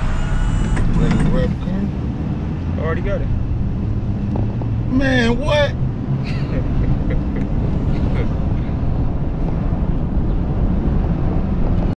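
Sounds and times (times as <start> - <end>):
truck engine running: 0.0 - 2.6
road rumble: 0.0 - 12.0.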